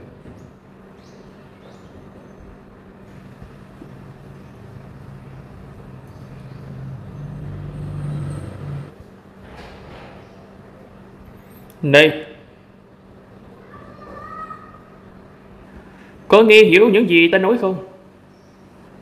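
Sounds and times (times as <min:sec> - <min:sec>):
held low notes: 0:03.1 - 0:09.0
low-pitched background drone: 0:03.1 - 0:09.0.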